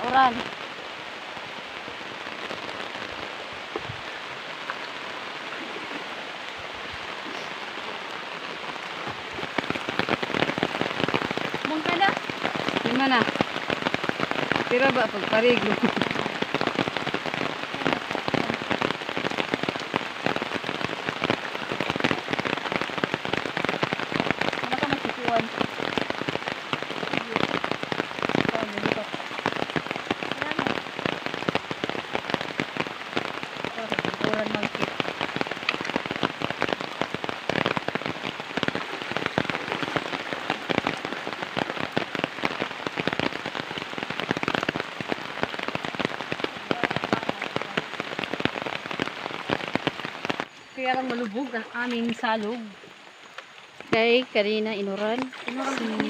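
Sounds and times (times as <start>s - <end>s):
rain falling on river: 0.0s - 56.0s.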